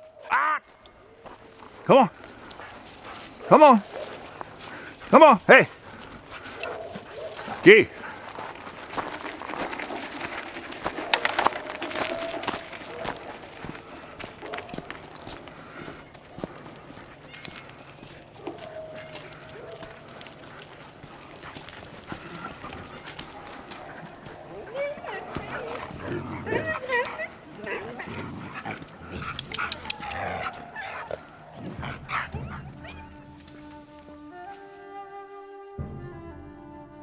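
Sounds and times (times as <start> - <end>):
dogs barking: 2.5 - 7.8, 10.8 - 15.4, 16.2 - 33.3
kick scooter rolling on pavement: 6.7 - 33.6
dogs yipping and whining: 17.2 - 34.4.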